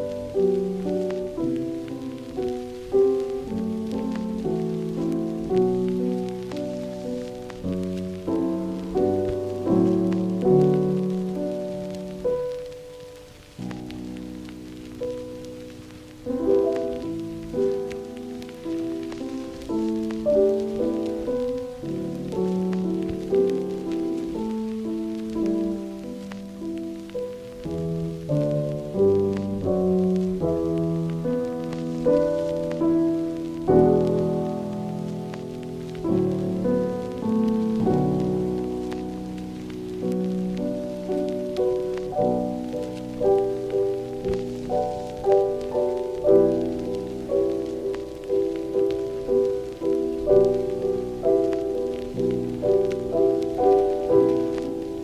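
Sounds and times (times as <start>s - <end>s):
faint crackling hiss: 0.0s - 55.0s
faint ticks: 0.0s - 55.0s
piano chords: 0.0s - 55.0s.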